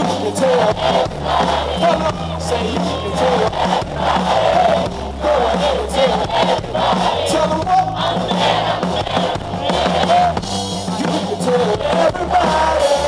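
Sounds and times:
crowd shouting and singing: 0:00.0 - 0:13.0
live band music: 0:00.0 - 0:13.0.

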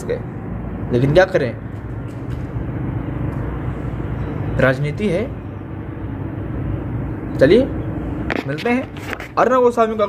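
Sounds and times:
low engine-like drone: 0:00.0 - 0:10.0.

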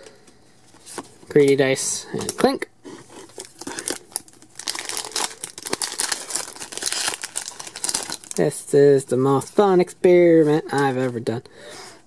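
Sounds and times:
foil wrapper crinkling and tearing: 0:03.1 - 0:08.4.

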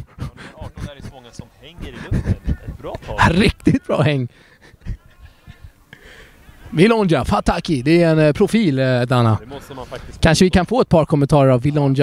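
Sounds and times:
voices calling out: 0:00.0 - 0:10.2.

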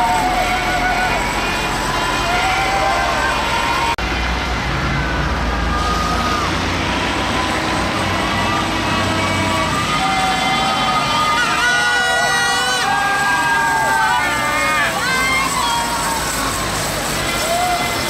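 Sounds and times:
people shouting: 0:00.0 - 0:04.0, 0:05.0 - 0:18.0
heavy trucks driving slowly: 0:00.0 - 0:18.0.

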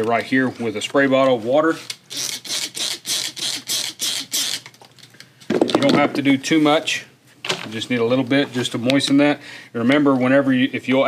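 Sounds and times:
spray bottle squirting water: 0:02.0 - 0:04.7.

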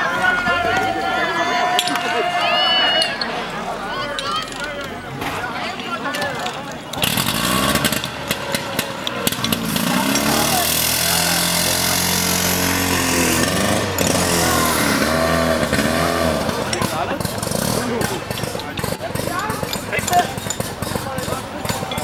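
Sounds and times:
small petrol engine running: 0:00.0 - 0:22.0.

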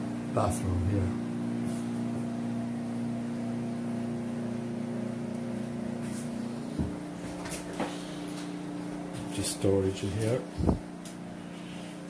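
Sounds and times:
mechanical hum: 0:00.0 - 0:12.0.

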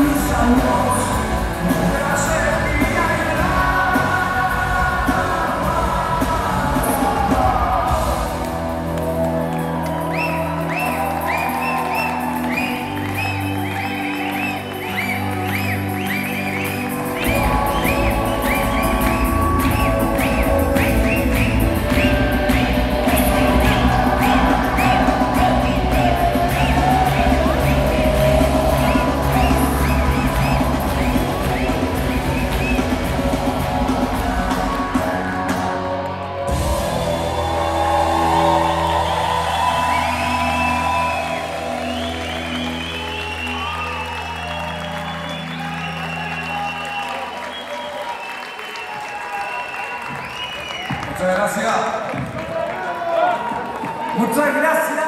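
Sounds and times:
live rock band playing: 0:00.0 - 0:46.9.

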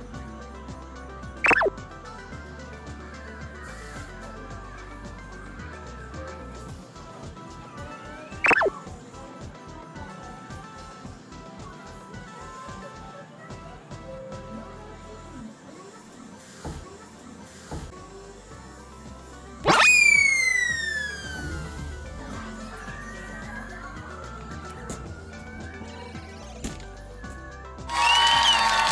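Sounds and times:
background music with steady beat: 0:00.0 - 0:28.9
cartoon boing sound effect: 0:01.5 - 0:01.7, 0:08.5 - 0:08.7, 0:19.7 - 0:20.0
downward gliding sound effect: 0:01.5 - 0:01.7.

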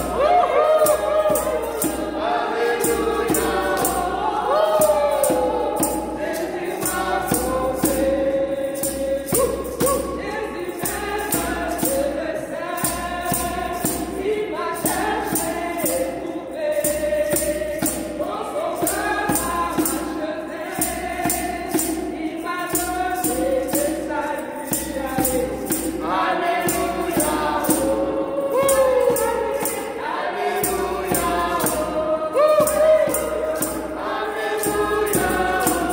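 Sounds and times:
djembe hand drum: 0:00.0 - 0:12.0
jingling hand percussion: 0:00.0 - 0:35.9
women singing hymn: 0:00.0 - 0:35.9.

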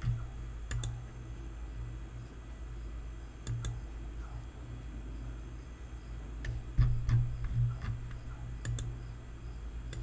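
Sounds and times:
computer mouse clicks: 0:00.0 - 0:01.0, 0:03.4 - 0:03.8, 0:06.4 - 0:09.0
low electrical hum: 0:00.0 - 0:10.0.

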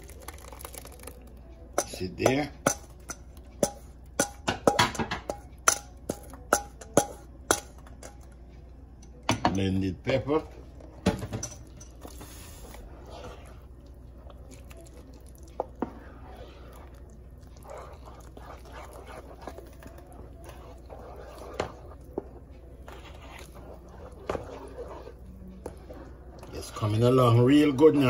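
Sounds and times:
low steady hum: 0:00.0 - 0:28.0
soft squelching stirring: 0:00.0 - 0:28.0.

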